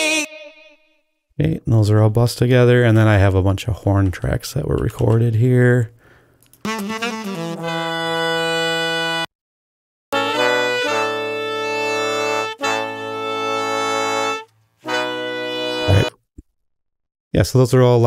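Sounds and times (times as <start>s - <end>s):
horn section playing held chords: 6.7s - 9.3s, 10.1s - 16.1s.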